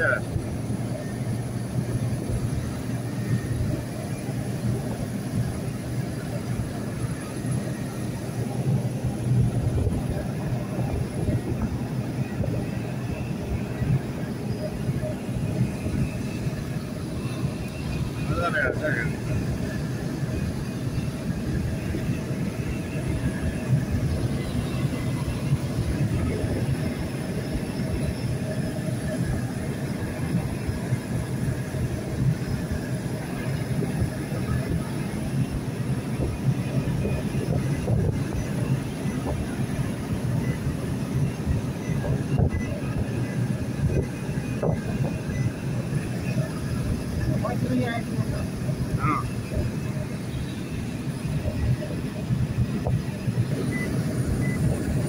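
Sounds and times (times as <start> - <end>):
engine and tyre rumble: 0.0 - 55.0.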